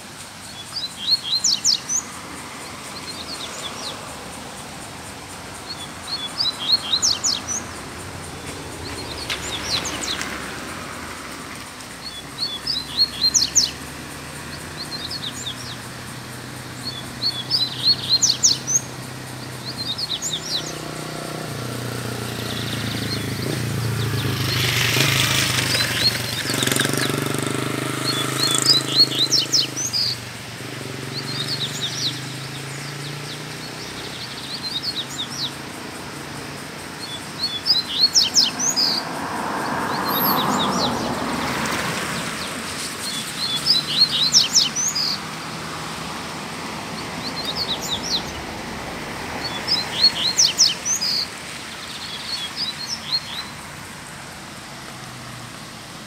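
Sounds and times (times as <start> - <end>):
bird singing chips and trills: 0.4 - 2.2, 5.6 - 10.4, 12.0 - 21.4, 22.1 - 35.7, 36.9 - 39.0, 42.4 - 45.7, 47.2 - 48.4, 49.4 - 53.7.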